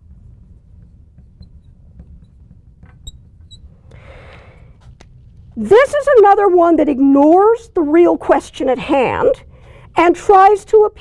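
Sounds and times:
marker squeaking on glass: 1.2s - 3.8s.

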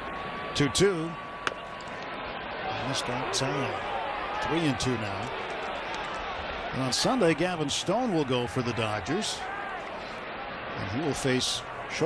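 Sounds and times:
crowd murmur: 0.0s - 12.0s
radio announcer talking: 6.8s - 9.4s.

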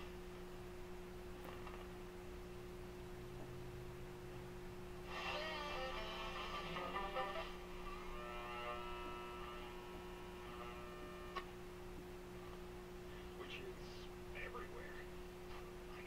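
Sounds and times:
steady radio hum: 0.0s - 11.6s, 12.3s - 16.0s
music from radio: 5.0s - 8.6s.

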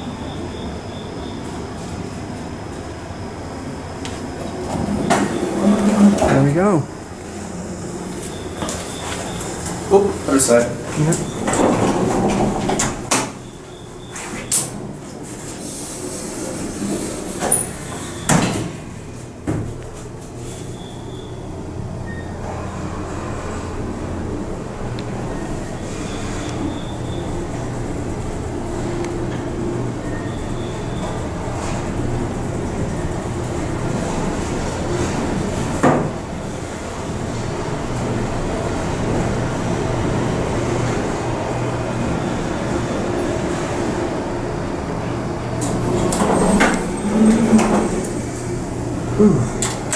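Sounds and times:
elevator doors clunking: 0.0s - 49.9s
elevator hum: 0.0s - 49.9s.

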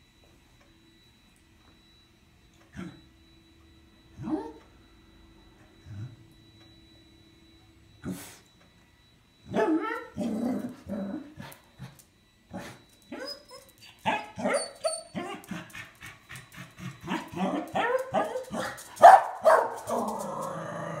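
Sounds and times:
dog barking and yipping: 13.1s - 15.6s, 17.1s - 20.1s.

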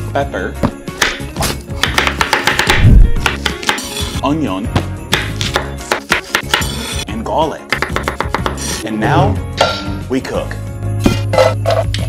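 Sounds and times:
background music: 0.0s - 12.0s
knife chopping on cutting board: 0.6s - 4.0s, 4.8s - 6.9s, 7.7s - 8.7s.

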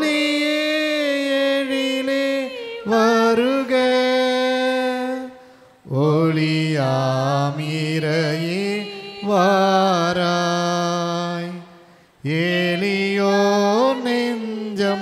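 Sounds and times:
church hymn singing: 0.0s - 15.0s.

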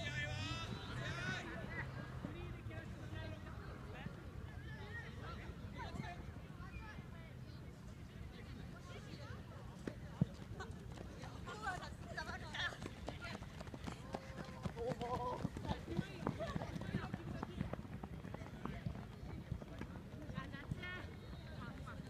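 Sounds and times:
players shouting: 0.0s - 1.8s.

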